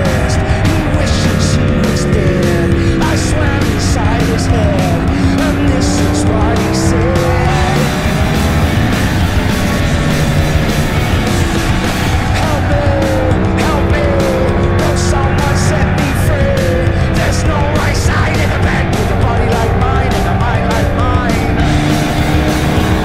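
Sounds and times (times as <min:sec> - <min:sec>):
motorcycle engine running: 0:00.0 - 0:23.0
rock music with steady beat: 0:00.0 - 0:23.0.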